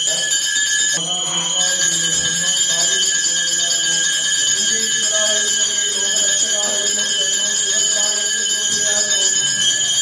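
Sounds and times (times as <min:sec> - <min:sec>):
faint voices: 0:00.0 - 0:10.0
temple bells ringing: 0:00.0 - 0:10.0.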